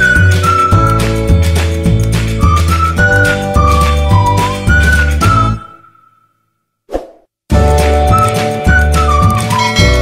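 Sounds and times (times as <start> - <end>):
flute-like melody over a beat: 0.0 - 6.1, 7.6 - 10.0.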